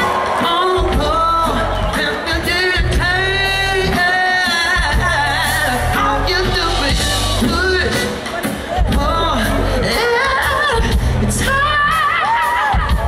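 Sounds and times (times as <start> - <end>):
live band playing: 0.0 - 13.0.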